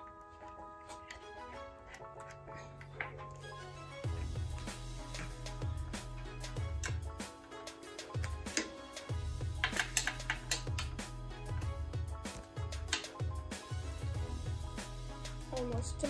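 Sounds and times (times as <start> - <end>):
instrumental music with beat: 0.0 - 16.0.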